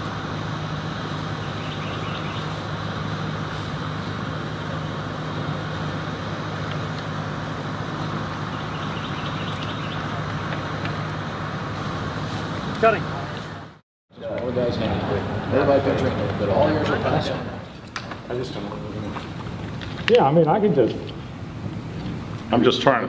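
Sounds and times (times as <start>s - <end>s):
mechanical drone with low hum: 0.0s - 23.0s.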